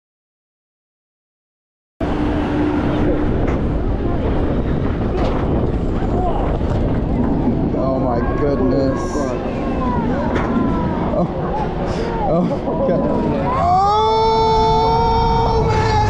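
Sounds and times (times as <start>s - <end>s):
roller coaster train rumble: 2.0s - 16.0s
wind buffeting microphone: 2.0s - 16.0s
riders chattering: 2.8s - 16.0s.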